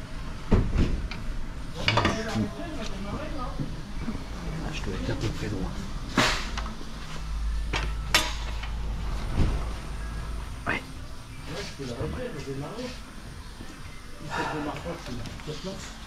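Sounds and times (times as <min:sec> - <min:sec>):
low hum: 0:02.5 - 0:15.5.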